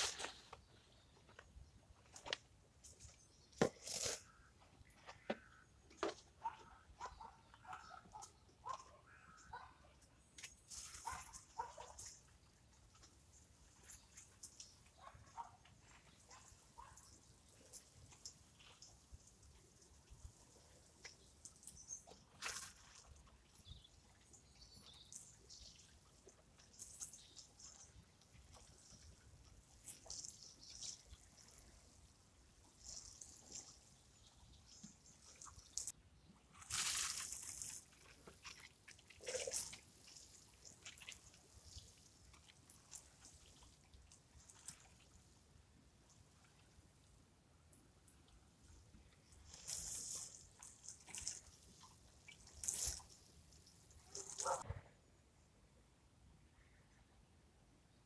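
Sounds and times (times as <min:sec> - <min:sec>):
watering can spraying onto soil: 0:00.0 - 0:04.5, 0:10.2 - 0:35.9, 0:36.6 - 0:45.4, 0:48.6 - 0:54.6.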